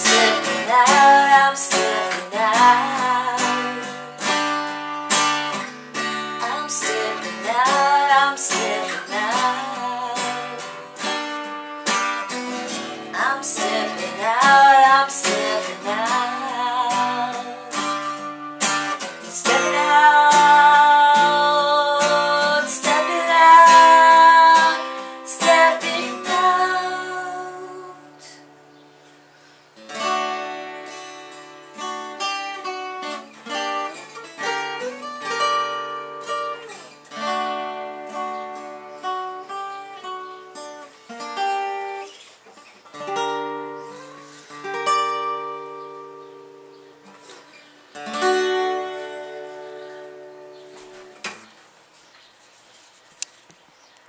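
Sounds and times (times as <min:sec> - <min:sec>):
acoustic guitar strumming: 0:00.0 - 0:52.1.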